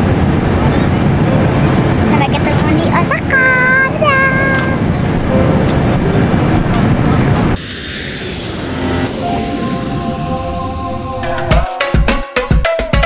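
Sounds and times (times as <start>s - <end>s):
jet airliner cabin noise: 0.0s - 11.7s
sustained musical notes: 0.9s - 12.1s
child's high-pitched voice: 2.1s - 4.8s
airy whoosh: 4.8s - 12.1s.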